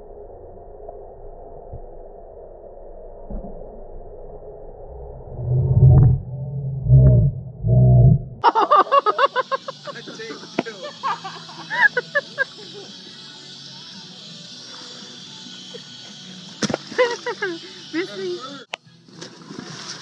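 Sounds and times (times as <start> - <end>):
voices: 8.5 - 14.2, 17.0 - 18.7
steady hiss: 8.5 - 18.6
music: 8.6 - 20.0.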